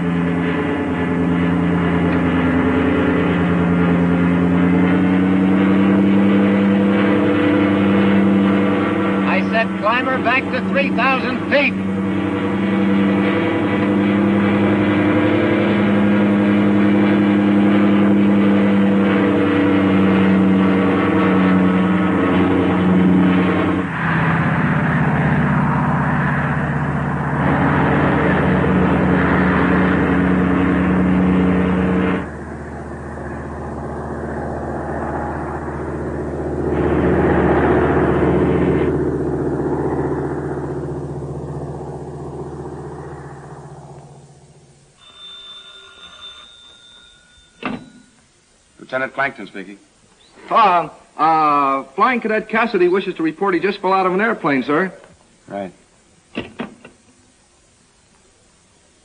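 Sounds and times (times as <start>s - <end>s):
propeller plane engine droning: 0.0s - 59.0s.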